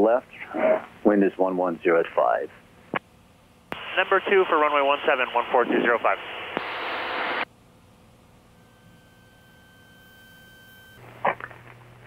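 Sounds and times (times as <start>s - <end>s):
low hum: 2.5s - 12.0s
faint steady tone: 3.6s - 11.0s
radio static hiss: 3.7s - 7.5s.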